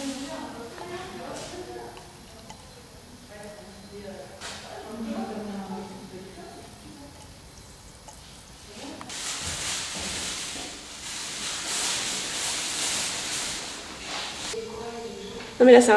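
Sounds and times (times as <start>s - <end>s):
faint voices: 0.0s - 7.5s
loud uneven hiss: 0.0s - 15.9s.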